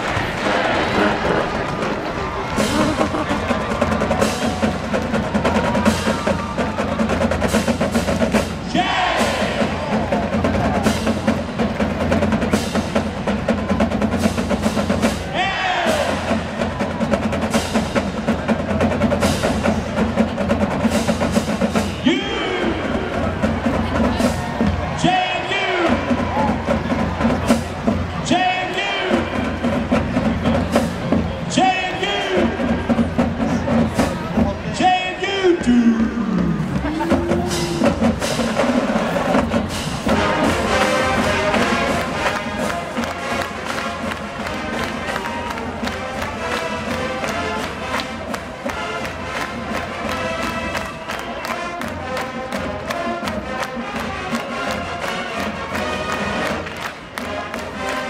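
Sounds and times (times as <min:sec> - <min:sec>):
marching band playing: 0:00.0 - 0:58.0
snare and bass drums: 0:00.0 - 0:58.0.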